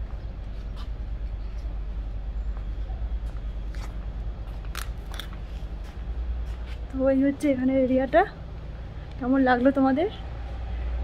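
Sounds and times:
footsteps on paving: 0:02.5 - 0:07.6.

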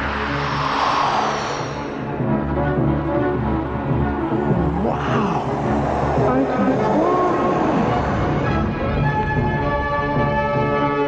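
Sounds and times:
whooshing fly-by effect: 0:00.0 - 0:02.4
orchestral score: 0:00.0 - 0:11.0.

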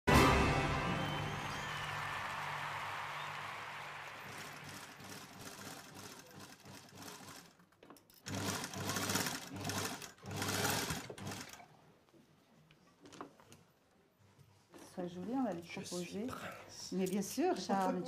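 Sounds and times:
title music: 0:00.1 - 0:02.0
electric sewing machine stitching: 0:04.3 - 0:07.6, 0:08.3 - 0:11.6.

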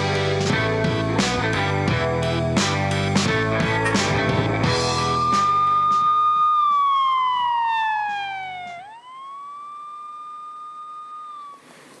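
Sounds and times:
rock theme music: 0:00.0 - 0:06.2
siren-like sliding tone: 0:03.9 - 0:11.8.

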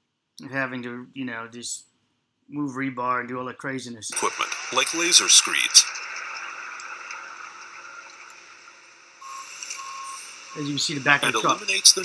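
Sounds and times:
steady hiss: 0:04.1 - 0:12.0
short high beeps: 0:09.2 - 0:12.0.

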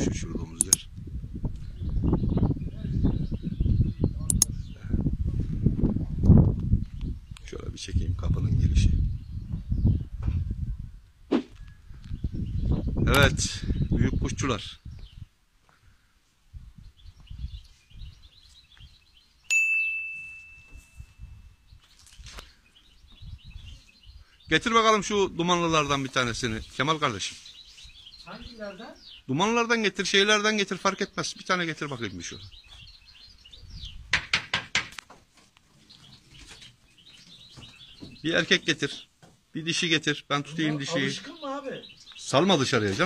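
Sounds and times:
low rumbling on microphone: 0:00.0 - 0:15.4
faint bird chirping: 0:11.6 - 0:19.5, 0:20.2 - 0:25.2, 0:31.1 - 0:34.1, 0:35.7 - 0:39.8
bright bell ding: 0:19.5 - 0:21.2.

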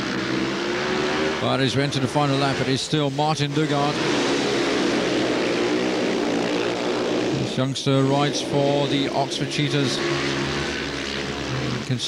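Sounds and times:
motorcycle engines racing: 0:00.0 - 0:12.0.

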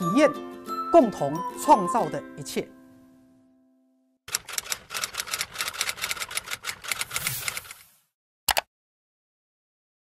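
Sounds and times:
keyboard key clicks: 0:08.5 - 0:08.7.

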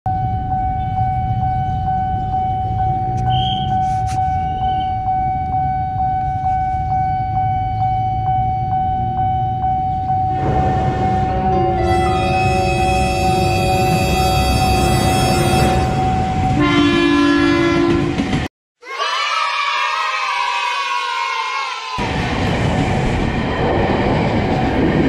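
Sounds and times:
level crossing alarm pulsing: 0:00.1 - 0:18.0
low rumble: 0:04.5 - 0:13.1.

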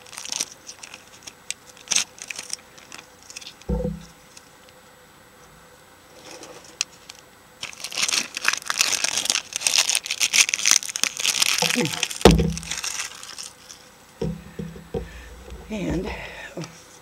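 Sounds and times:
plastic wrapper crinkling and tearing: 0:00.0 - 0:03.7, 0:06.2 - 0:13.9
thump: 0:03.7 - 0:04.1, 0:12.2 - 0:12.8, 0:14.2 - 0:15.2.

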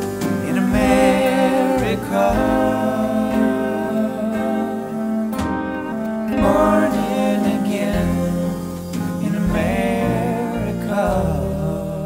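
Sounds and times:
acoustic guitars playing: 0:00.0 - 0:12.0
bowed violin: 0:00.0 - 0:12.0.

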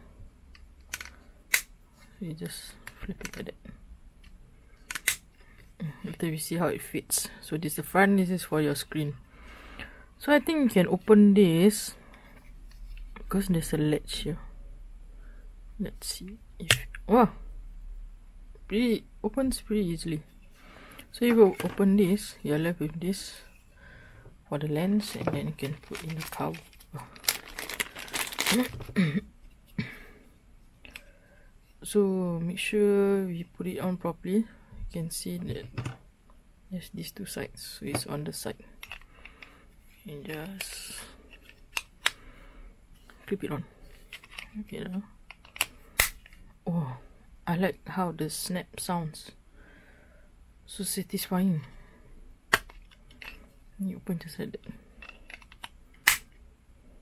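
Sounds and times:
plastic lens cover clicks: 0:04.8 - 0:05.3, 0:45.3 - 0:46.4, 0:52.5 - 0:53.4, 0:55.1 - 0:56.4
plastic bag crinkling: 0:25.0 - 0:29.0.

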